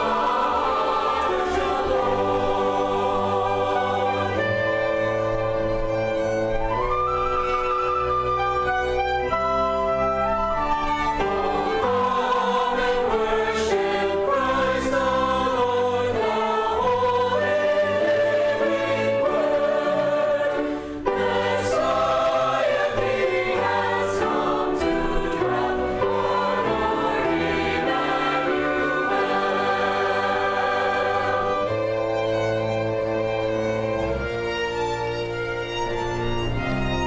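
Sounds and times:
choir singing: 0:00.0 - 0:07.0, 0:08.4 - 0:37.0
string ensemble: 0:00.0 - 0:37.0.

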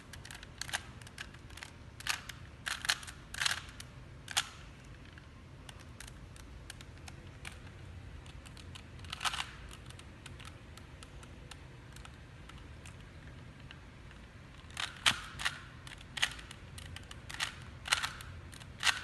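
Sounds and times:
puzzle cube layers clicking: 0:00.1 - 0:19.0.

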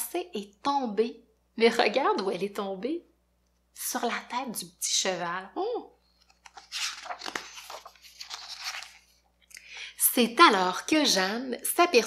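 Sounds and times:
stiff paper page turning: 0:06.1 - 0:09.2.

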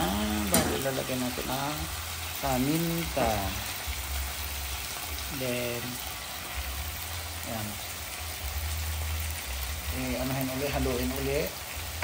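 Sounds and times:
food sizzling in a pot: 0:00.0 - 0:12.0.

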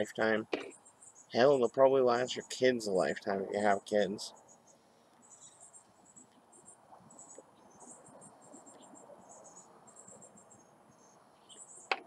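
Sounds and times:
crickets chirping: 0:00.0 - 0:01.5, 0:04.3 - 0:12.0.

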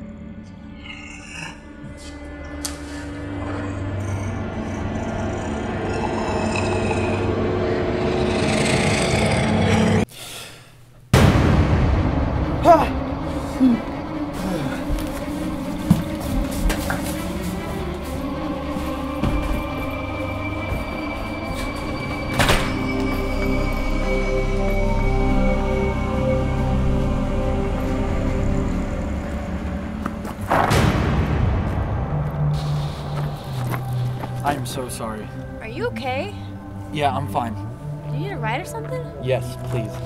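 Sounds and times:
low sustained drone: 0:00.0 - 0:10.1, 0:11.2 - 0:30.0, 0:30.7 - 0:40.0.

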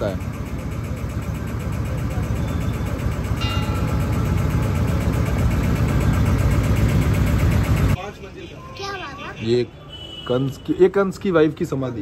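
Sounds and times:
motorboat engine running: 0:00.0 - 0:08.0.

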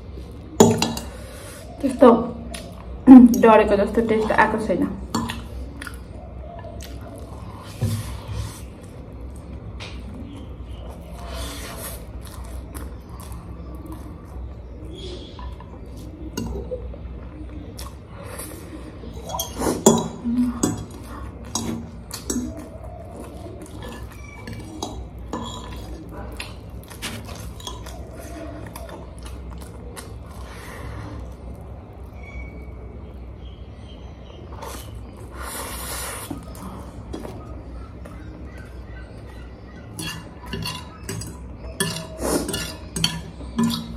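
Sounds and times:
chewing: 0:05.1 - 0:32.8, 0:34.5 - 0:43.9
fork scraping on a plate: 0:23.8 - 0:26.0, 0:39.9 - 0:43.9.

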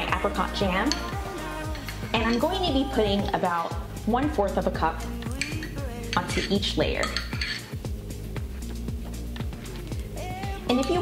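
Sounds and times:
background music with beat: 0:00.0 - 0:11.0
metal spoon scraping glass jar: 0:00.8 - 0:02.7, 0:05.3 - 0:07.8.

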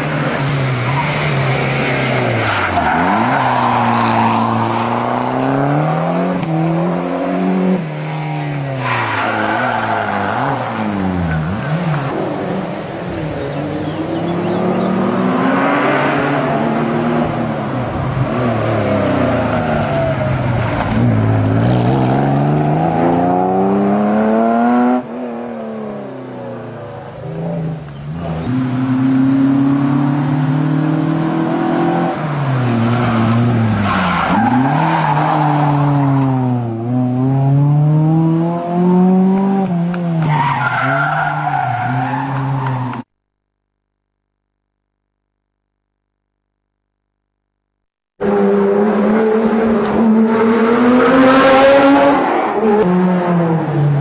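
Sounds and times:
rally car engines revving: 0:00.0 - 0:43.1, 0:48.2 - 0:54.0.

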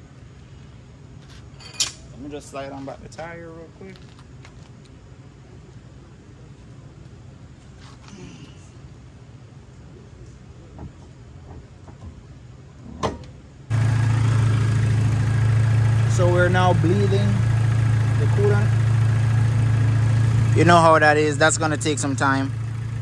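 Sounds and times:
car engine idling: 0:13.7 - 0:23.0
low hum: 0:13.7 - 0:23.0.

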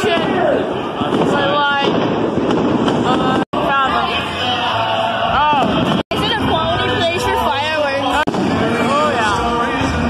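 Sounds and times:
fireworks going off: 0:00.0 - 0:03.9, 0:05.4 - 0:06.8, 0:08.2 - 0:10.0
crowd voices: 0:00.0 - 0:10.0
music: 0:03.6 - 0:10.0.

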